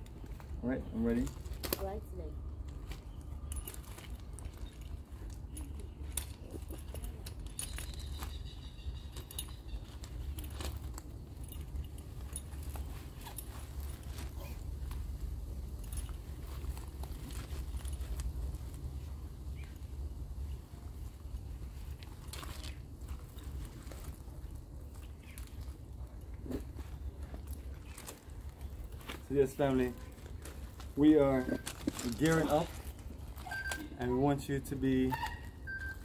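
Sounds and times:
harness buckles clinking: 0.0s - 36.0s.

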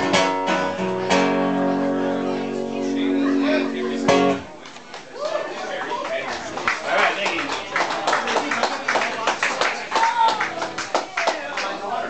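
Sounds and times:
crowd voices: 0.0s - 12.0s
audience clapping: 4.6s - 12.0s.

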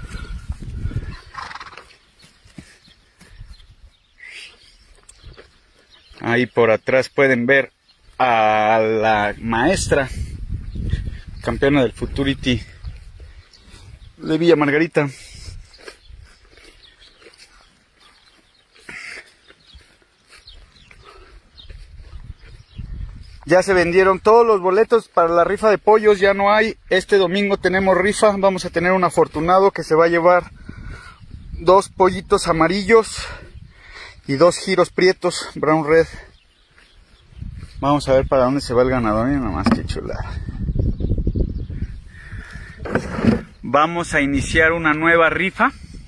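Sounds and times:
low rumble of horse moving: 0.0s - 4.0s, 19.5s - 23.4s.

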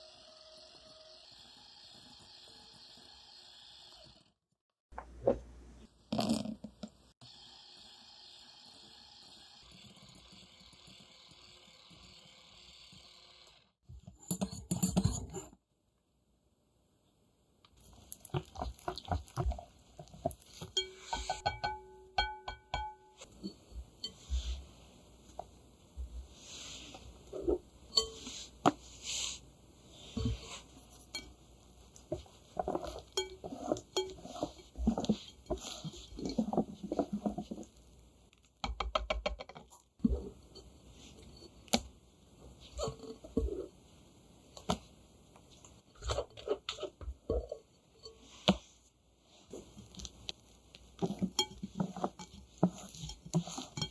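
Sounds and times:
whisk clinking against glass: 20.5s - 24.3s, 32.6s - 36.5s, 51.0s - 53.9s
whisk stirring batter: 30.1s - 37.8s, 50.9s - 53.9s.

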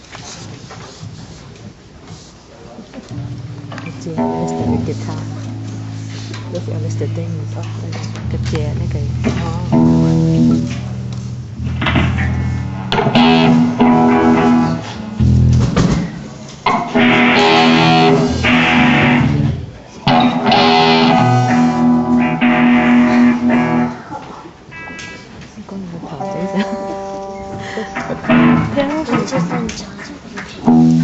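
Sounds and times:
bass: 3.1s - 24.0s, 28.1s - 29.0s, 30.7s - 31.0s
electric guitar chords ringing: 3.1s - 25.2s, 26.2s - 29.2s, 30.6s - 31.0s.

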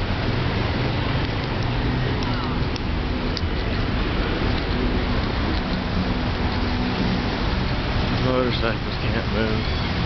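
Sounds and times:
idling car and motorcycle engines: 0.0s - 10.0s
low engine hum: 0.0s - 10.0s.

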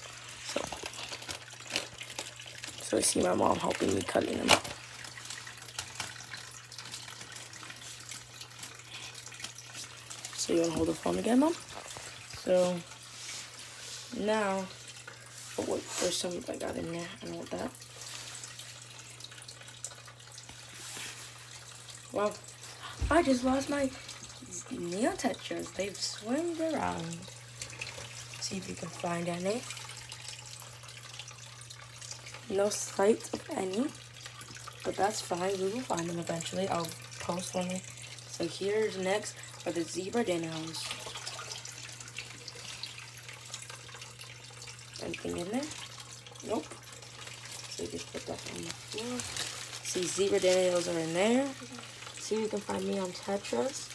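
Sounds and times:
water trickling and dripping: 0.0s - 53.9s.

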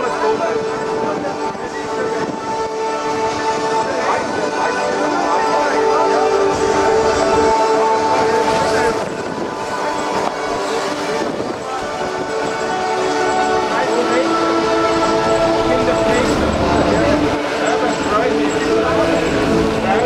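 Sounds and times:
music of sustained chords: 0.0s - 20.0s.

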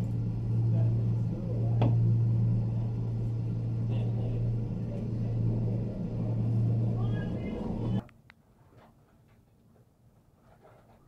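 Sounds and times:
gondola cabin hum and rumble: 0.0s - 8.1s.

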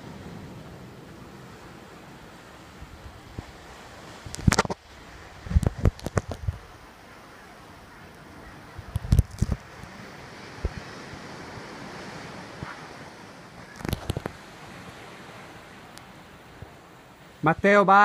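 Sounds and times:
sea surf: 0.0s - 18.0s
wind: 0.0s - 18.0s.

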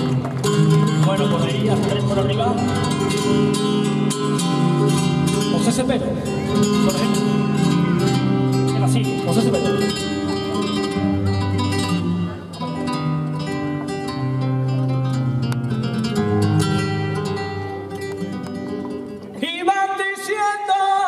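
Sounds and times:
flamenco guitar playing: 0.0s - 21.0s.

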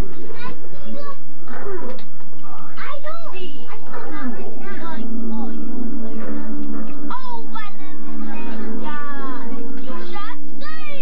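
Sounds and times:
steady low hum: 0.0s - 11.0s
children chattering and calling out: 2.8s - 11.0s.

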